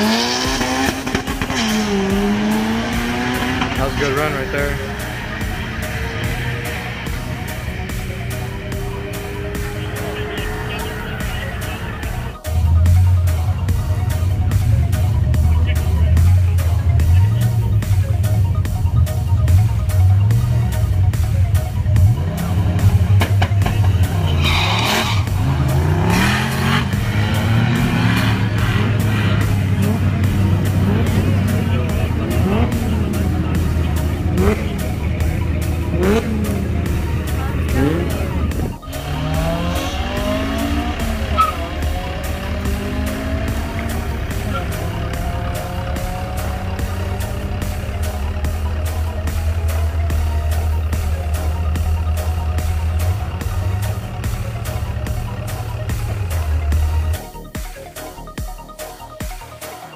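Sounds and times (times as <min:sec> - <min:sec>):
drag cars accelerating: 0:00.0 - 0:57.4
rock music: 0:00.0 - 0:59.9.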